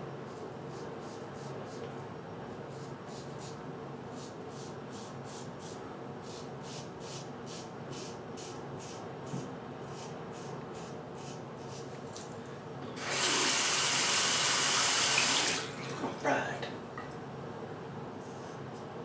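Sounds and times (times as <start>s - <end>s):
tap water running into sink: 13.0s - 16.2s.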